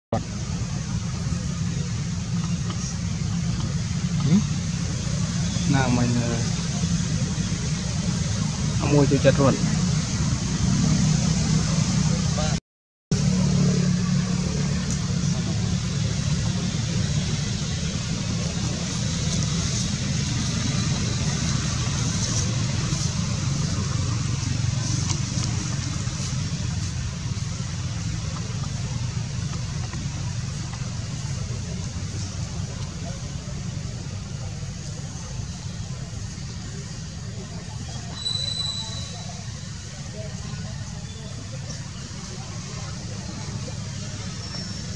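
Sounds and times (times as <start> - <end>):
low engine drone: 0.1 - 38.1
constant hiss: 0.2 - 12.6, 13.2 - 44.9.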